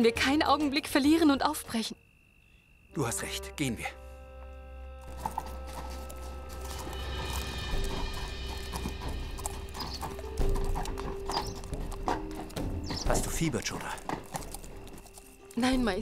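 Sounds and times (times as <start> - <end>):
background music score: 2.9 - 16.0
horses hooves clip-clopping: 5.0 - 16.0.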